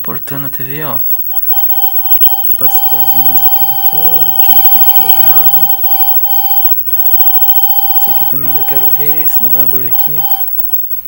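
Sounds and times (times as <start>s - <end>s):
steady electronic television tone: 0.0s - 11.0s.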